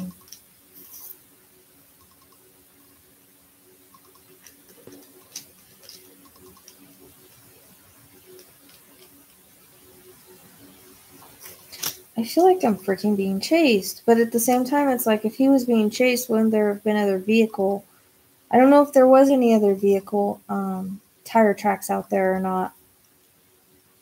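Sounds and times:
faint low hum: 0.0 - 24.0
soft hiss: 0.0 - 24.0
small clicks: 2.0 - 3.0, 3.9 - 7.5.

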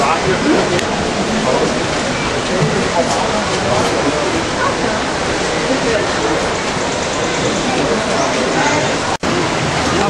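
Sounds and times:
indistinct voices: 0.0 - 10.0
waterfall rushing: 0.0 - 10.0.

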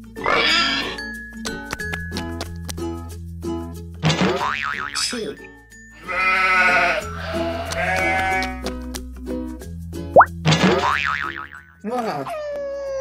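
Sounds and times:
cheerful background music: 0.0 - 12.3
sheep bleating: 0.2 - 1.0, 6.0 - 8.7.

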